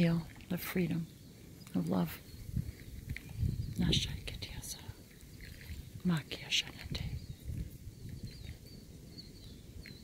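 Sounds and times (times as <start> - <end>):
person whispering: 3.8 - 5.0, 6.0 - 7.3.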